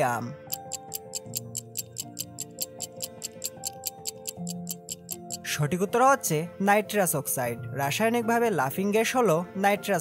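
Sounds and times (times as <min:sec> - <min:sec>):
soft background music: 0:00.0 - 0:10.0
fast stopwatch ticking: 0:00.5 - 0:05.5.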